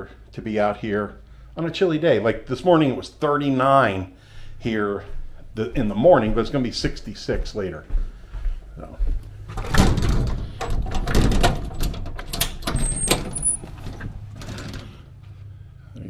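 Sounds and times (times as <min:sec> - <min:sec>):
footsteps on wooden deck: 0:05.0 - 0:09.6
storm door knocks and clicks: 0:09.5 - 0:15.0.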